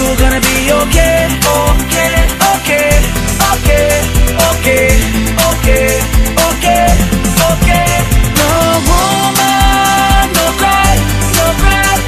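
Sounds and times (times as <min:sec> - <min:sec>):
rhythm and blues pop instrumental: 0:00.0 - 0:12.0.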